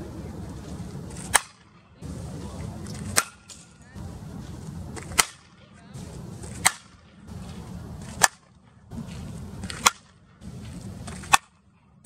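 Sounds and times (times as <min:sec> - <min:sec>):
bat cracking against softballs: 0:00.5 - 0:11.8.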